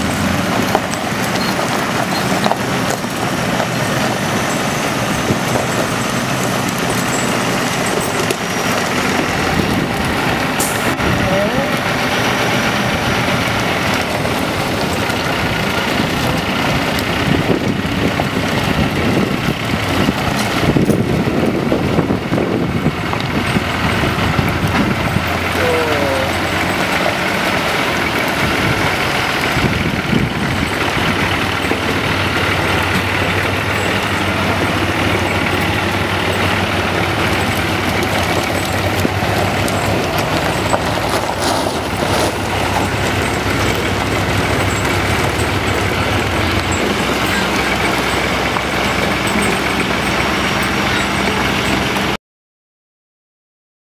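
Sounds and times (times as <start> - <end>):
diesel truck engine under load: 0.0 - 52.2.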